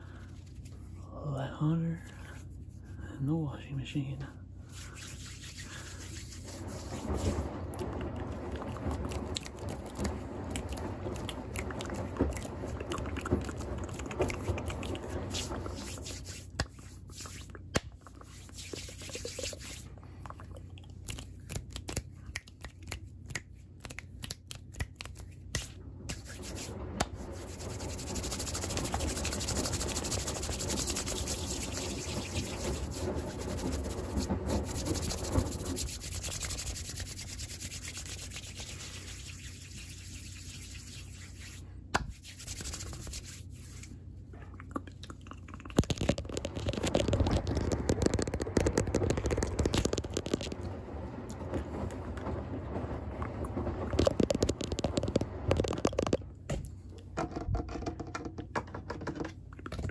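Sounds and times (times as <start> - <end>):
washing machine humming: 0.0 - 59.9
hands rubbing against microphone: 0.2 - 1.0, 4.6 - 20.0, 21.1 - 44.4, 45.7 - 56.1.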